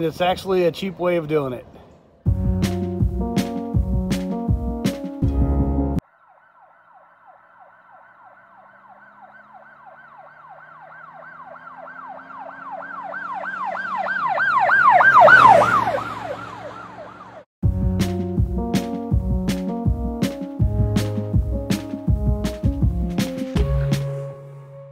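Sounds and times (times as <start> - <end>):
emergency siren yelping: 6.0 - 17.5.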